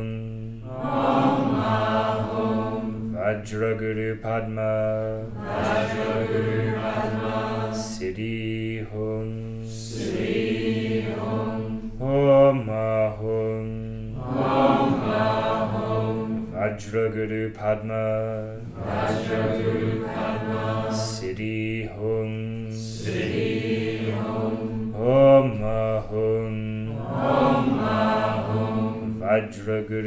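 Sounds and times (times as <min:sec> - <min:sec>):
group of voices chanting: 0:00.7 - 0:03.1, 0:05.3 - 0:08.0, 0:09.9 - 0:11.8, 0:14.2 - 0:16.6, 0:18.6 - 0:21.2, 0:23.0 - 0:24.9, 0:26.9 - 0:29.2.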